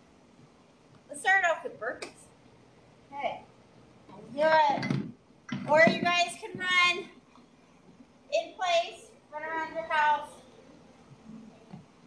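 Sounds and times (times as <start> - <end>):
woman speaking: 1.1 - 2.3, 5.7 - 7.1, 8.3 - 10.4.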